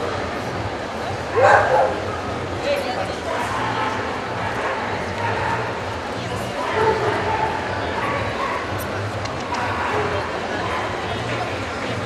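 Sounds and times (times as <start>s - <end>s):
crowd chatter: 0.0s - 12.0s
dogs barking and yipping: 1.4s - 2.0s.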